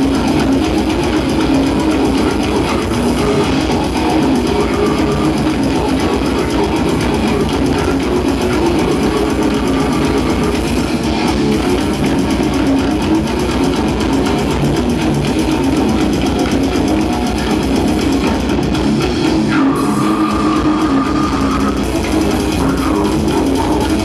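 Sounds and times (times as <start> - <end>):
distorted electric guitars: 0.0 - 24.0
fast dense drumming: 0.0 - 24.0.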